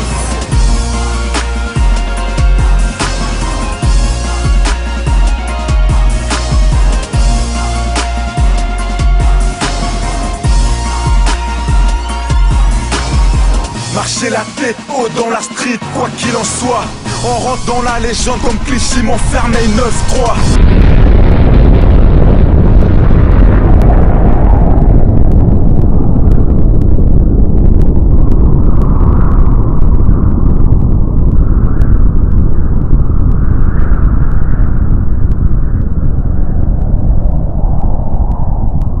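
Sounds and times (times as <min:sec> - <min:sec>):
deep rumbling roar of explosions: 0:00.0 - 0:39.0
building collapsing: 0:16.8 - 0:39.0.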